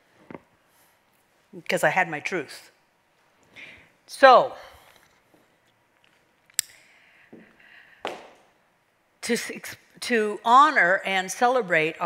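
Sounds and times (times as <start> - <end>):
woman speaking: 1.5 - 2.8, 4.1 - 4.7, 9.2 - 12.0
woman breathing: 3.5 - 4.0, 6.7 - 8.1.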